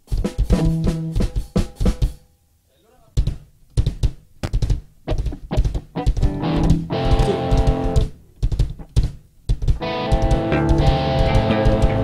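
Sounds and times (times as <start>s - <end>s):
rock band playing live: 6.2s - 8.0s, 9.8s - 12.0s
held guitar chord: 6.5s - 7.9s.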